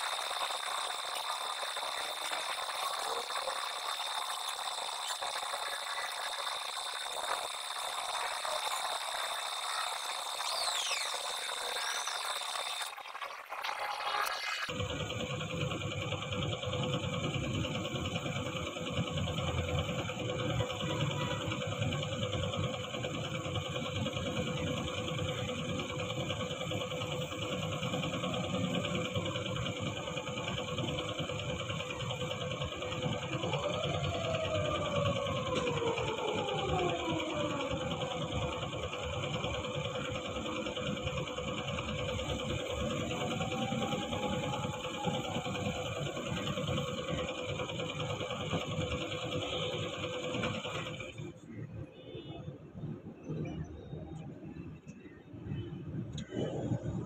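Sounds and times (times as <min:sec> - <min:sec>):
air compressor humming: 0:00.0 - 0:51.4.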